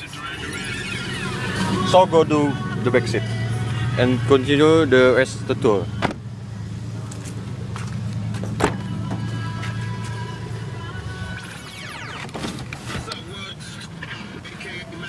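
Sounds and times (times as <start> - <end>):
car door latch click: 6.0 - 6.2
car door swinging open: 6.0 - 6.2, 8.4 - 9.3, 12.0 - 13.2.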